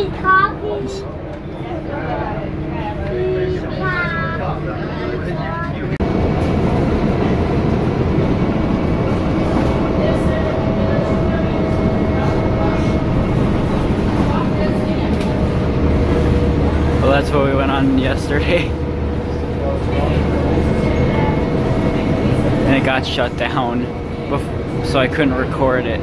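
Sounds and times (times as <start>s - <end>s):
bus engine and road noise: 0.0s - 26.0s
faint passenger voices: 0.0s - 26.0s.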